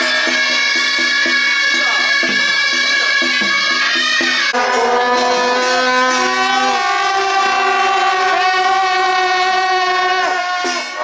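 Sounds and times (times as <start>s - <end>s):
brass band sustained chords: 1.6s - 11.0s.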